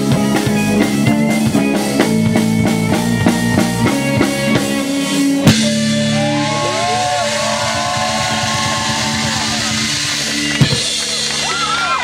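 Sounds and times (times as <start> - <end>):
rock band with violin: 0.0 - 12.0.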